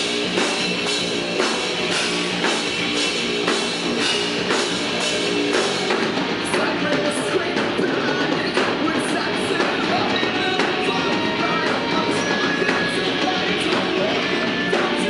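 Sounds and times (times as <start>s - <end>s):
bass guitar: 0.0s - 15.0s
distorted electric guitars: 0.0s - 15.0s
drum kit with cymbal hits: 0.0s - 15.0s.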